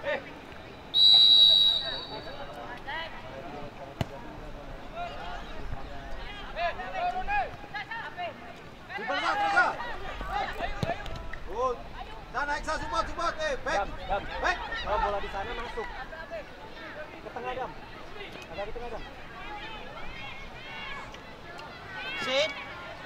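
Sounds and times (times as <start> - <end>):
players and spectators shouting: 4.9 - 23.0.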